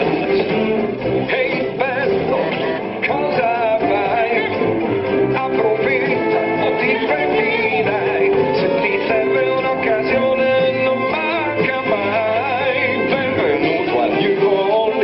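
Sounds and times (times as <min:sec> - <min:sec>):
instrumental accompaniment: 0:00.0 - 0:15.0
person singing: 0:00.0 - 0:15.0.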